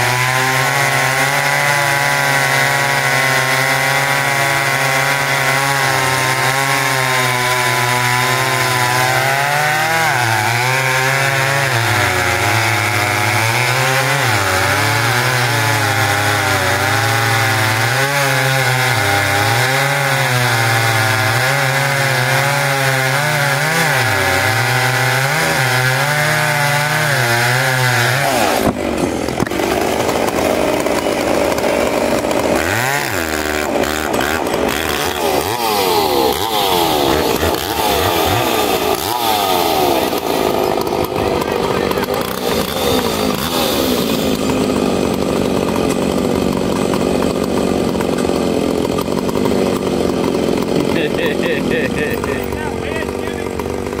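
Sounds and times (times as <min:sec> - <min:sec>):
chainsaws cutting log: 0:00.0 - 0:54.0.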